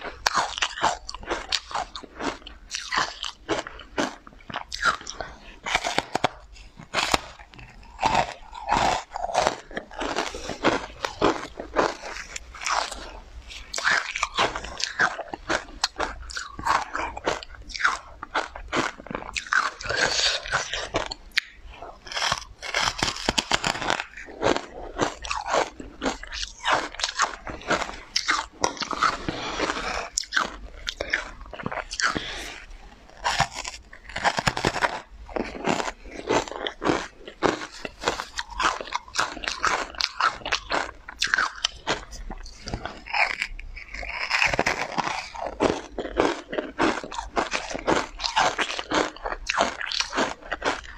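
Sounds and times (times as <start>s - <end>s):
chewing and biting cake: 0.0s - 50.9s
mouth clicks and smacks: 0.1s - 50.9s.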